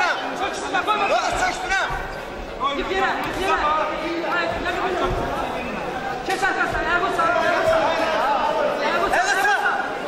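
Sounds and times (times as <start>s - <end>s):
voices calling out in hall: 0.0s - 10.0s.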